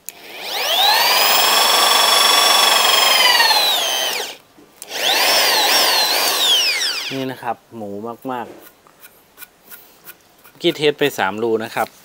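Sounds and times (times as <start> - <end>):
drill motor whine: 0.1 - 7.2.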